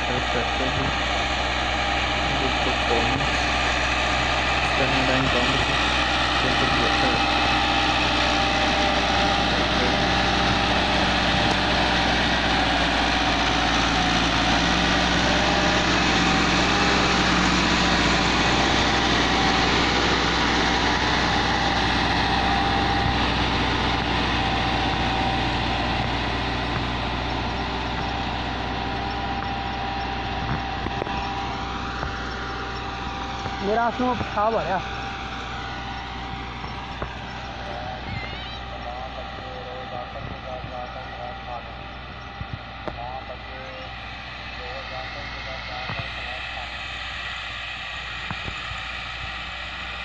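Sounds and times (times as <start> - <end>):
tractor diesel engine running: 0.0 - 50.0.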